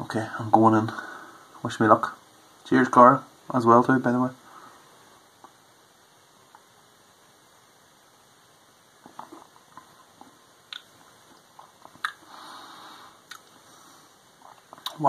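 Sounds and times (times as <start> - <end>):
lip smacks and tongue clicks: 9.0 - 12.2, 13.2 - 13.6, 14.5 - 15.0
soft breath out: 12.2 - 14.2.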